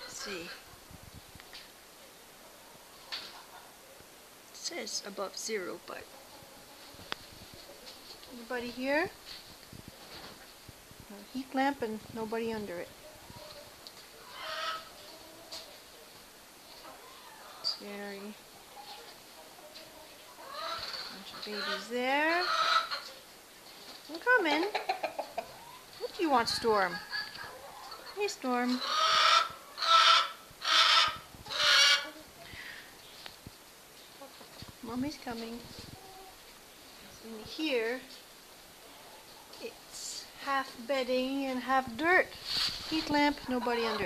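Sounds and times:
faint chicken sound: 0:00.0 - 0:04.4, 0:05.9 - 0:08.4, 0:12.9 - 0:34.7, 0:35.4 - 0:40.0
hen raspy call: 0:14.2 - 0:15.0, 0:20.3 - 0:23.1, 0:26.4 - 0:32.2.

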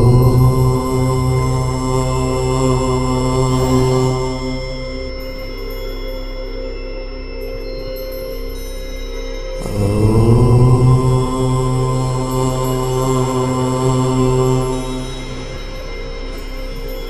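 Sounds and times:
man chanting: 0:00.0 - 0:05.1, 0:09.6 - 0:16.9
steady meditation drone: 0:00.0 - 0:17.0.

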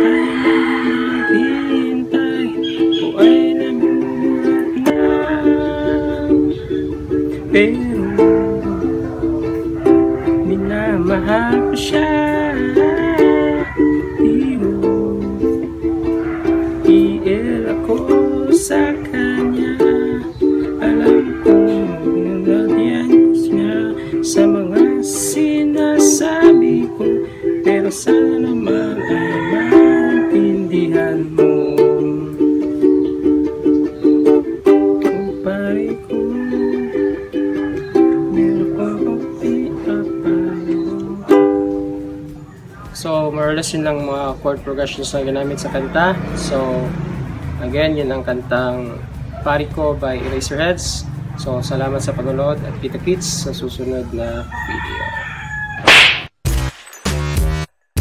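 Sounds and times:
drawn-out pitched call: 0:00.0 - 0:05.2
ukulele strumming: 0:00.0 - 0:54.3.

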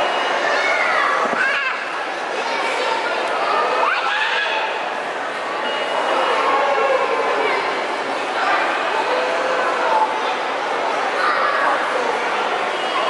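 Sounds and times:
children chattering: 0:00.0 - 0:13.0.

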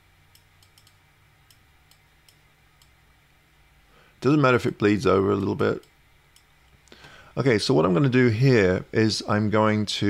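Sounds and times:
low room hum: 0:00.0 - 0:10.0
computer mouse clicking: 0:00.3 - 0:02.9.

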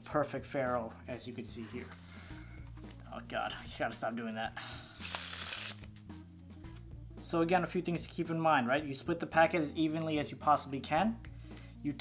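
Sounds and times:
playing cards riffling: 0:05.0 - 0:06.1.

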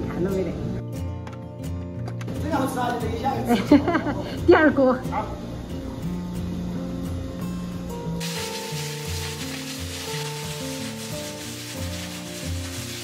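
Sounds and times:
background music: 0:00.0 - 0:13.0
steam hissing from pressure cookers: 0:08.2 - 0:13.0.

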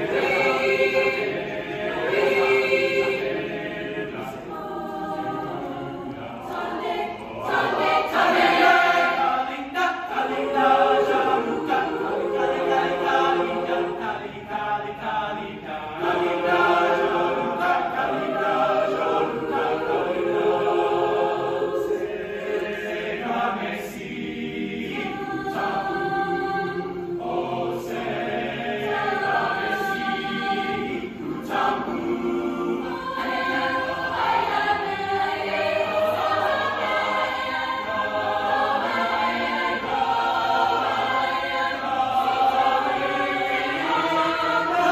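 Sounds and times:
choir singing in parts: 0:00.0 - 0:44.9.

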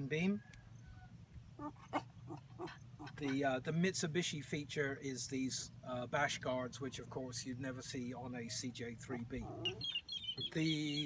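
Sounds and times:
faint animal calls: 0:00.4 - 0:03.4, 0:09.0 - 0:11.0.

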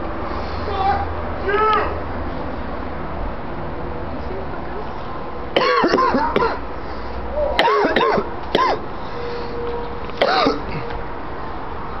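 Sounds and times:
person yelling: 0:00.7 - 0:02.0.

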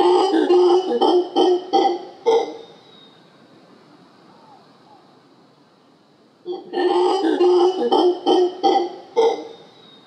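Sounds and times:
howler monkey calling: 0:00.0 - 0:03.2, 0:06.4 - 0:10.0.

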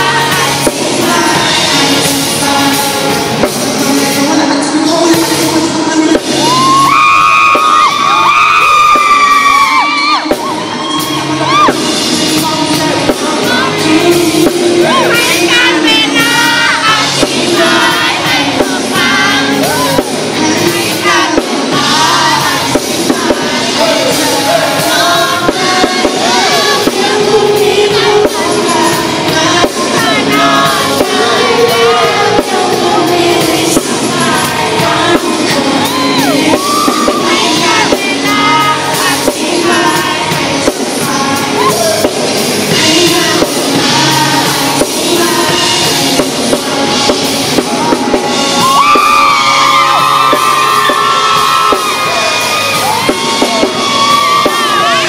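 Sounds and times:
man singing: 0:00.0 - 0:07.1, 0:11.2 - 0:48.3
drum kit beat: 0:00.0 - 0:55.0
pop-rock band playing: 0:00.0 - 0:55.0.

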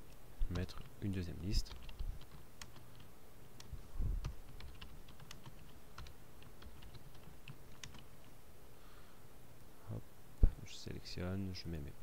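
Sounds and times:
keyboard typing clicks: 0:01.6 - 0:08.1.

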